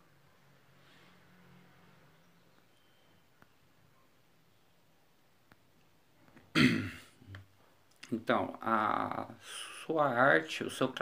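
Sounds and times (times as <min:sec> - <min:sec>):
person clearing throat: 0:06.5 - 0:07.2.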